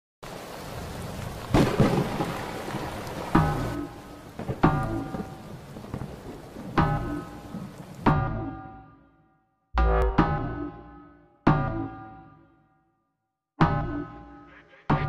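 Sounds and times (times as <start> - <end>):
steady rain: 0.2 - 8.4
thunder claps: 0.3 - 8.3
piano-like keyboard chords: 8.1 - 9.0.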